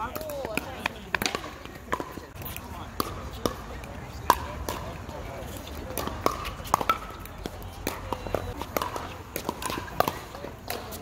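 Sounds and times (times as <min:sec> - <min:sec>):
paddles striking plastic ball: 0:00.1 - 0:05.0.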